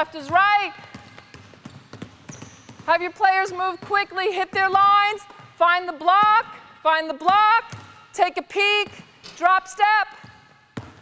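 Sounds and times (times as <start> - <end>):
basketballs bouncing on hardwood floor: 0.0 - 9.5, 10.1 - 11.0.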